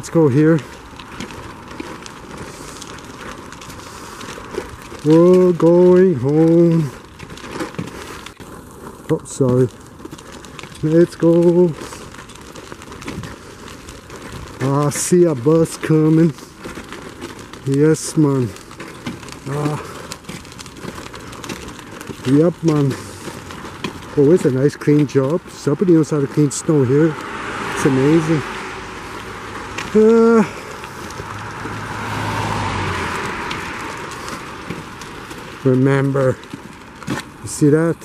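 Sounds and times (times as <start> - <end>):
footsteps crackling on snow: 0.0 - 38.0
outdoor street hiss: 0.0 - 38.0.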